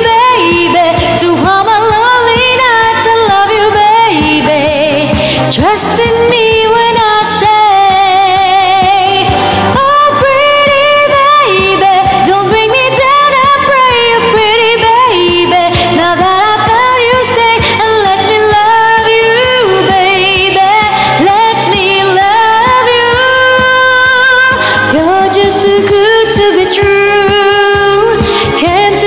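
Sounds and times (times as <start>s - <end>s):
pop backing track: 0.0s - 29.0s
woman singing with vibrato: 0.0s - 29.0s.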